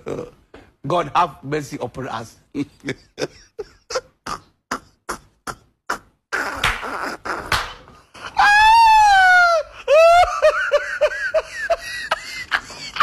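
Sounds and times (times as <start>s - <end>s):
person laughing: 2.6s - 13.0s.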